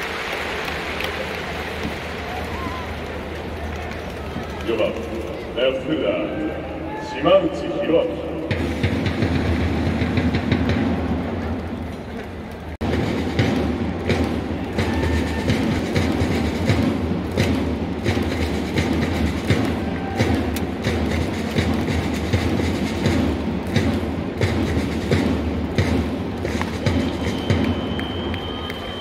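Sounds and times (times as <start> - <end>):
large crowd of fans: 0.0 - 29.0
taiko and snare drums beating: 8.4 - 11.8, 12.8 - 28.7.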